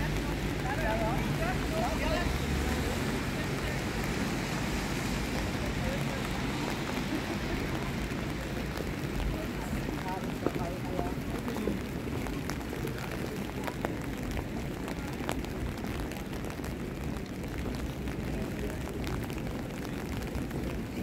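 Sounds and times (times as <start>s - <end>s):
voices of passers-by: 0.0s - 21.0s.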